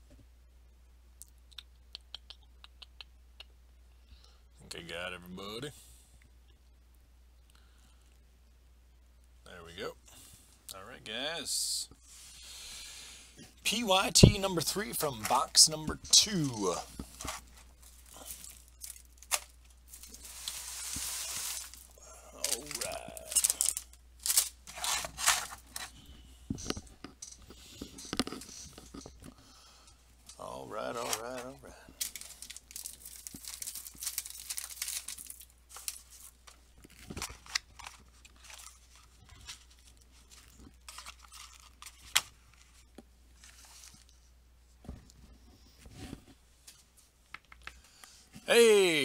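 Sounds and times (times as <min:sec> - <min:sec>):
packaging tearing and rustling: 0:16.2 - 0:26.0, 0:32.0 - 0:42.8.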